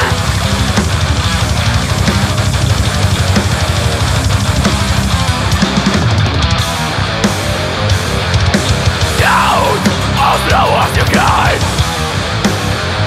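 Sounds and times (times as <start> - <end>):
distorted electric guitars: 0.0 - 13.0
drum kit: 0.0 - 13.0.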